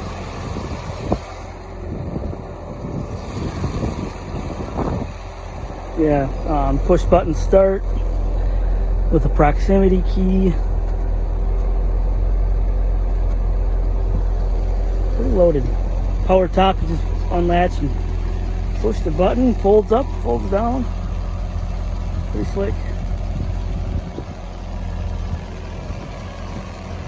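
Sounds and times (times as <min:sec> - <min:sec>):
car engine idling: 0:00.0 - 0:27.0.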